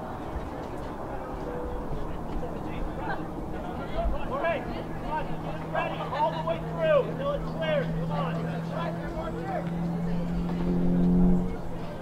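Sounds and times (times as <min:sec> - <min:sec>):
low vehicle engine hum: 0:00.0 - 0:12.0.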